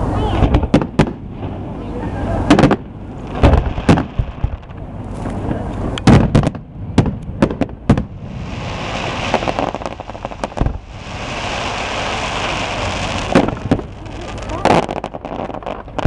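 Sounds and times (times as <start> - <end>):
firework bangs: 0.2 - 1.8, 2.4 - 16.0
firework crackling hiss: 7.9 - 16.0.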